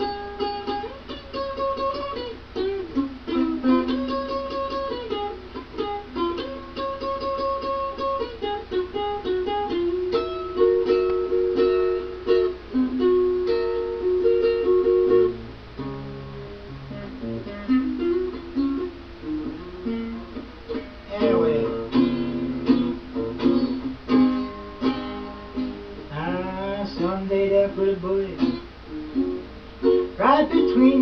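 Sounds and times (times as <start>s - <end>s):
plucked string instrument solo: 0.0s - 31.0s.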